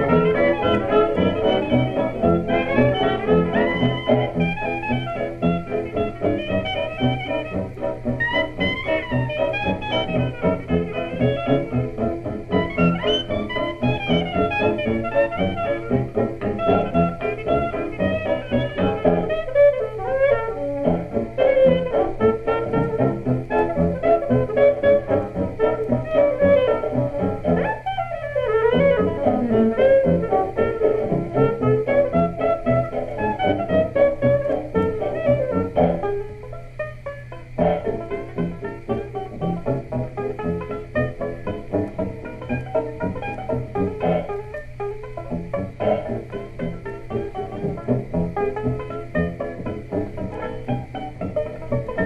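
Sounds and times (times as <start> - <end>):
jazz band playing: 0.0 - 36.4, 37.0 - 52.0.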